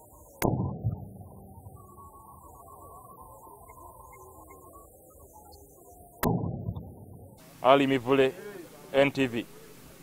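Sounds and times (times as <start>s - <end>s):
loud bang with low rumble: 0.4s - 1.8s, 6.2s - 7.3s.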